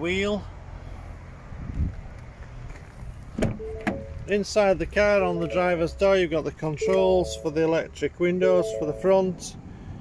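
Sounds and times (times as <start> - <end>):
car door latch clicking: 3.4 - 4.1
car door swinging open: 3.4 - 4.1
short steady warning tone: 5.3 - 5.9, 6.8 - 7.6, 8.6 - 9.2.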